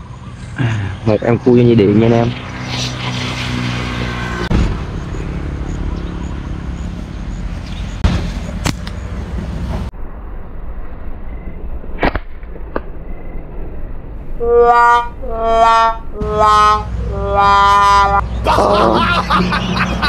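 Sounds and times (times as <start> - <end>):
outdoor noise rush: 0.0 - 14.4, 15.1 - 20.0.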